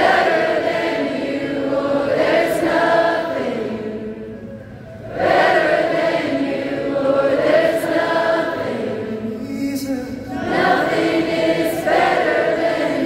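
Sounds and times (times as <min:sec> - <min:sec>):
crowd singing worship song: 0:00.0 - 0:13.0.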